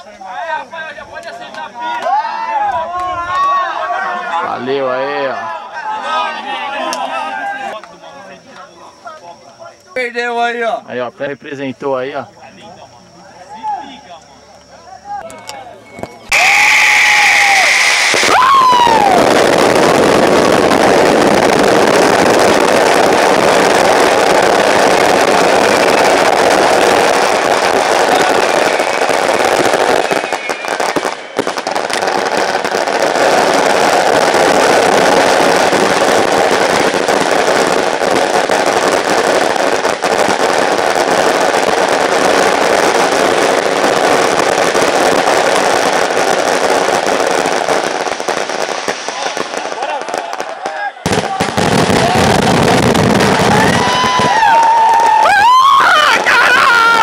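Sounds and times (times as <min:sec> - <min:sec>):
fireworks crackling and popping: 0:00.0 - 0:57.0.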